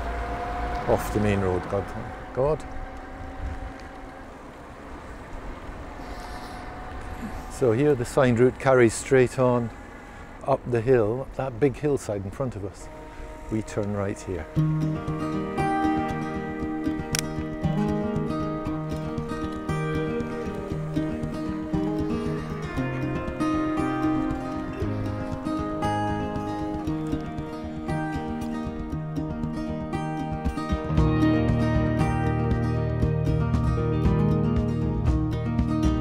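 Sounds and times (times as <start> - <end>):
tyres rolling on tarmac: 0.0 - 14.4
wind buffeting microphone: 0.0 - 30.8
plucked melody with bouncing rhythm: 14.5 - 36.0.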